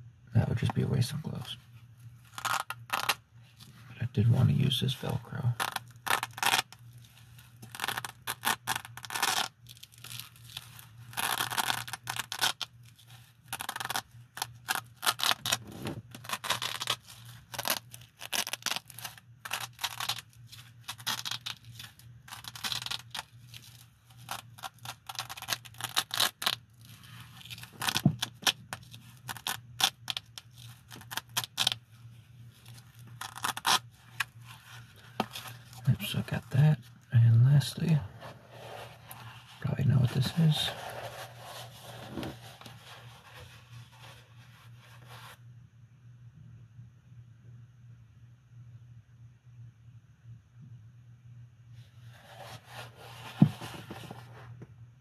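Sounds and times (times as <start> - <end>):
velcro ripping: 2.2 - 3.2, 5.4 - 31.8, 32.5 - 36.6, 38.2 - 44.2.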